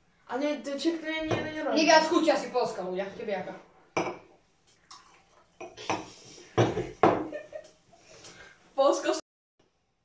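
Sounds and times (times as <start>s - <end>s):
glasses clinking: 4.0s - 4.3s.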